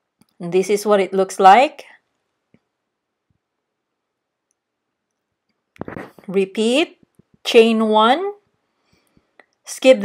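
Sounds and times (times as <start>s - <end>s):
person speaking: 5.8s - 8.4s.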